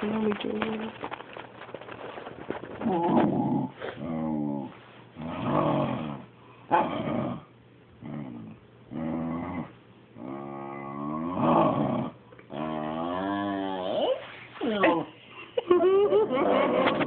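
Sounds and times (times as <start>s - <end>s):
dog growling grumbles: 2.8s - 15.1s.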